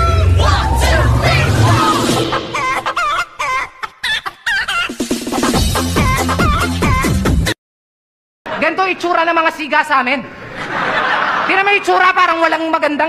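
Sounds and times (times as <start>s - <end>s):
heavy bass beat: 0.0s - 3.0s.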